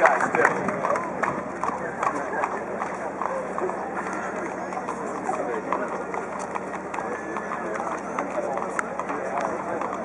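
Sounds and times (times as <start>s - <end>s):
horse hooves on cobblestones: 0.0s - 10.0s
people talking: 0.0s - 10.0s.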